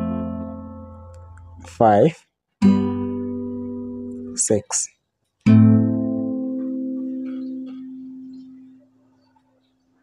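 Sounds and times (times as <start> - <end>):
acoustic guitar chord ringing: 0.0 - 2.0, 2.6 - 4.4, 5.4 - 8.9.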